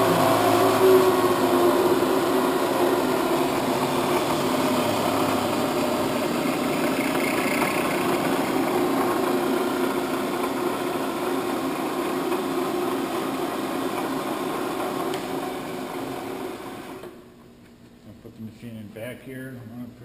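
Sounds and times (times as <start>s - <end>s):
low undertone: 0.0s - 8.8s
milling machine motor humming: 0.0s - 17.2s.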